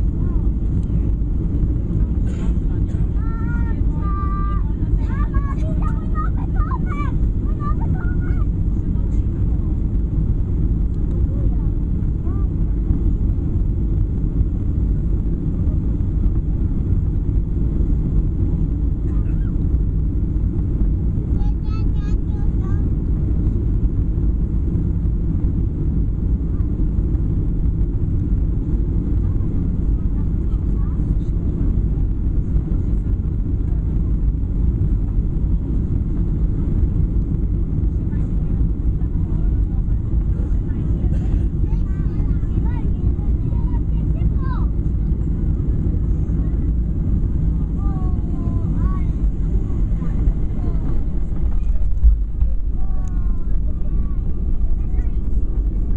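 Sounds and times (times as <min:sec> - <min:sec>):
airliner cabin engine rumble: 0:00.0 - 0:55.9.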